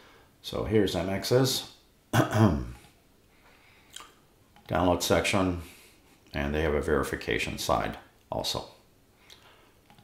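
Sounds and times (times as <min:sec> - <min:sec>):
man clearing his throat: 0:02.1 - 0:02.8.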